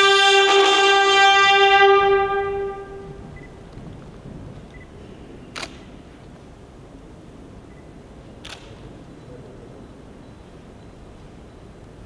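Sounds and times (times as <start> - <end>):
camera shutter click: 5.5 - 5.9, 8.4 - 8.8.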